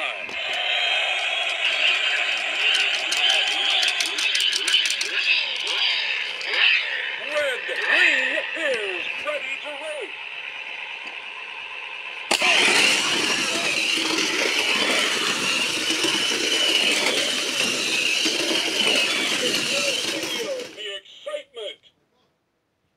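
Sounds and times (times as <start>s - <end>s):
electronic racing sound effects: 0.0s - 20.8s
toy starting gate click: 0.3s - 6.8s.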